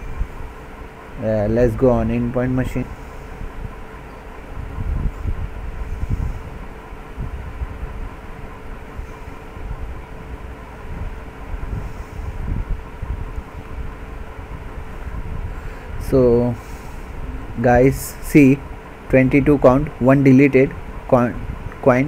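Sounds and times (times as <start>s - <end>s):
faint steady hum: 0.0s - 22.0s
low uneven rumble: 0.0s - 22.0s.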